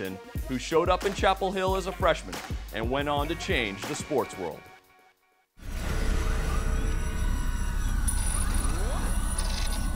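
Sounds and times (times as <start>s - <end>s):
thin sustained tones: 5.7s - 9.9s.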